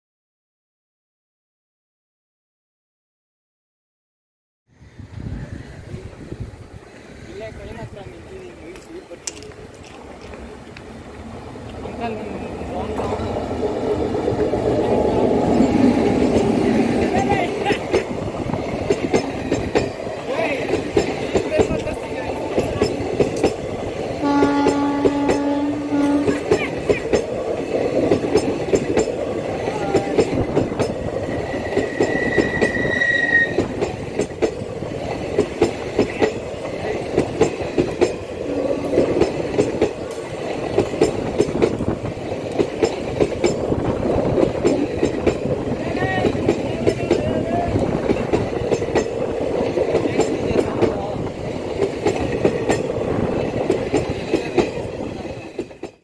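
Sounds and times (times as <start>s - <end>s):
train wheels clattering over rail joints: 8.6s - 10.8s, 14.0s - 32.8s, 33.6s - 56.0s
train horn: 24.2s - 26.4s
thin high squeal: 31.8s - 33.6s.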